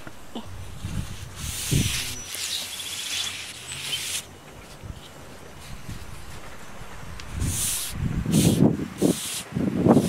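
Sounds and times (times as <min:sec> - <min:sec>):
paper towel rubbing on steel: 0:00.8 - 0:04.2
bird chirps: 0:01.9 - 0:05.2.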